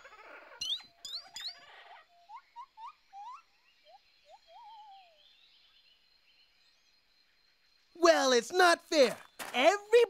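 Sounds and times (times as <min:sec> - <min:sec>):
high rising animal chirps: 0:00.0 - 0:05.4.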